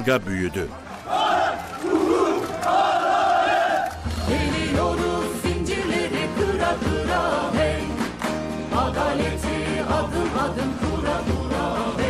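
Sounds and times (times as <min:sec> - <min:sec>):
crowd shouting together: 0:01.0 - 0:04.6
music with singing: 0:03.8 - 0:12.0.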